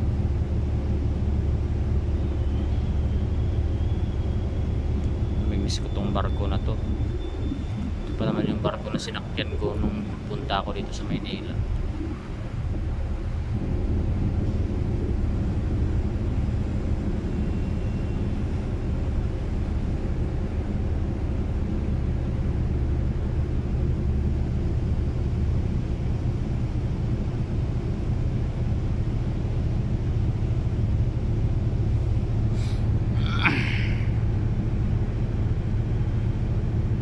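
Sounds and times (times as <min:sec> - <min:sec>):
ferry engines rumbling: 0:00.0 - 0:37.0.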